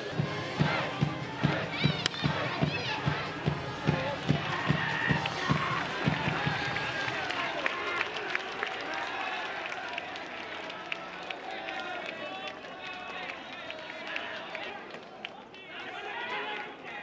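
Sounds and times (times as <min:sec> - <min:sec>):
men calling and shouting: 0:00.0 - 0:09.9.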